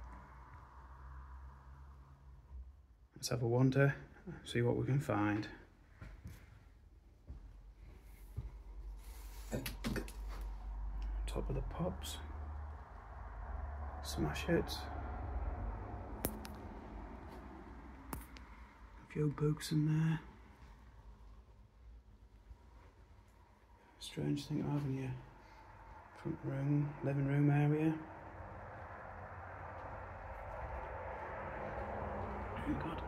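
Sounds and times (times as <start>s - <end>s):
road traffic rumble: 0.0s - 33.0s.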